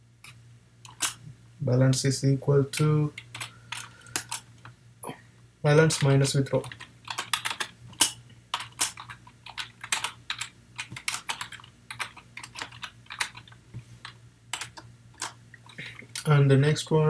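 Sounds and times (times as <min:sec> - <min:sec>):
typing on computer keyboard: 0:05.9 - 0:15.4.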